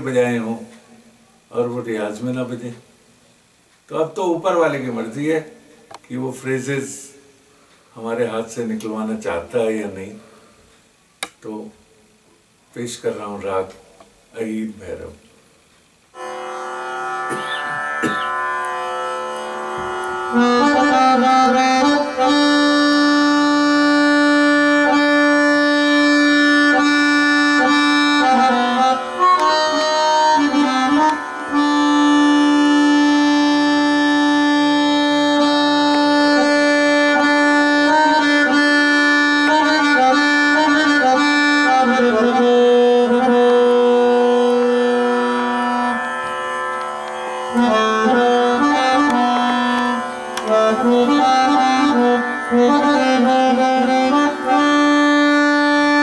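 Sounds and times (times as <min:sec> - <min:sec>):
harmonium reed tone: 0:16.1 - 0:56.0.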